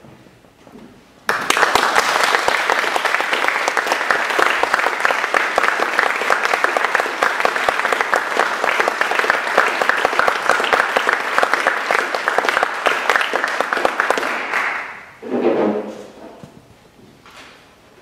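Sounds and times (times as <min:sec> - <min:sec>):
audience applauding: 0:01.3 - 0:15.2.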